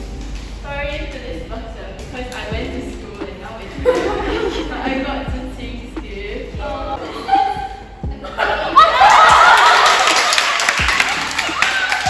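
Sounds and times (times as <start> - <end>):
girls laughing and squealing: 6.9 - 10.3
hands clapping: 9.1 - 12.0.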